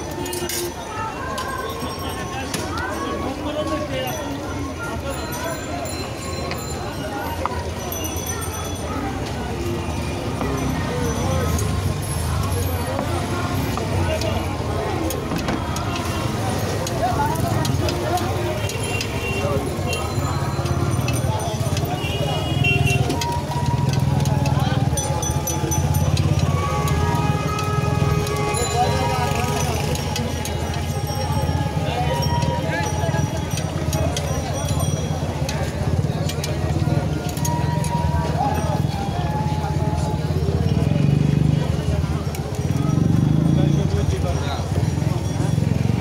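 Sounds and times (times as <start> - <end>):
low traffic rumble: 0.0 - 46.0
many people talking: 0.0 - 46.0.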